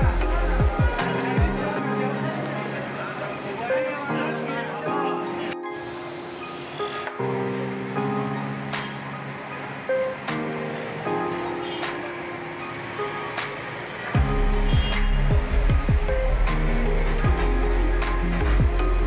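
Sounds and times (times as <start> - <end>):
music with held chords: 0.0 - 19.0
deep bass with falling slides: 14.2 - 19.0.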